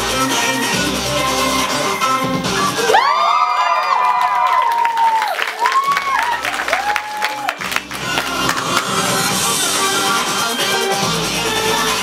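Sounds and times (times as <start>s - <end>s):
music: 0.0s - 12.0s
whoops: 2.8s - 7.6s
audience cheering and clapping: 2.8s - 9.4s.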